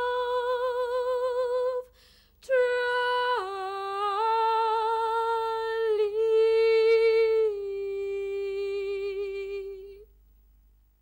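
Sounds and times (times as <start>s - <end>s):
woman singing unaccompanied: 0.0s - 10.1s.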